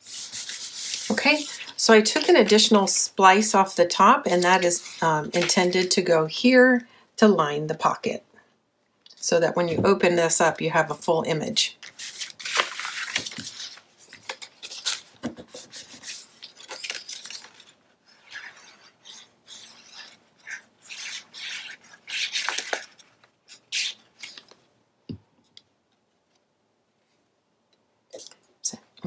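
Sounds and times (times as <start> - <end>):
paper rustling and scraping: 0.0 - 2.6, 11.8 - 24.6.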